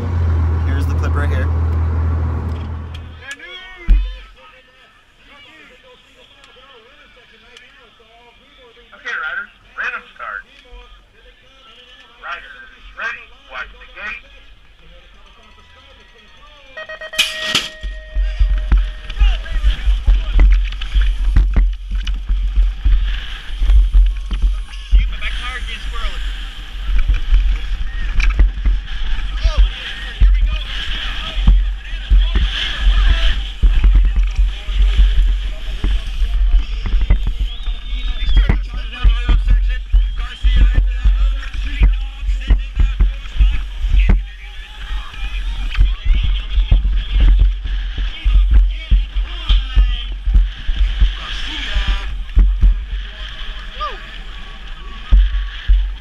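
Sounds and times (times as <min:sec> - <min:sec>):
steady tones: 0:00.0 - 0:04.2, 0:16.2 - 0:56.0
start gate clanging: 0:16.8 - 0:19.6
wind buffeting microphone: 0:17.9 - 0:53.2.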